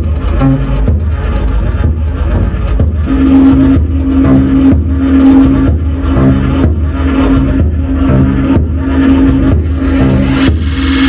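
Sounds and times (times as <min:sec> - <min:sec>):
deep synth bass: 0:00.0 - 0:11.0.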